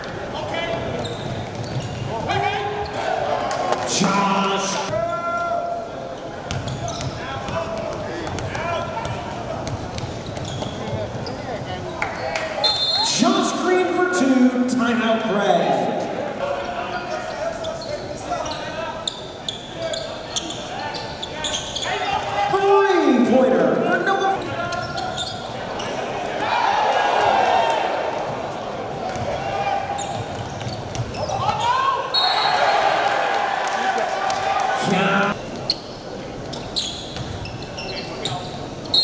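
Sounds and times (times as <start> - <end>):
sneakers squeaking on floor: 0.6 - 3.0, 6.2 - 13.1, 16.9 - 23.1, 24.2 - 26.1, 28.9 - 32.6, 35.4 - 39.0.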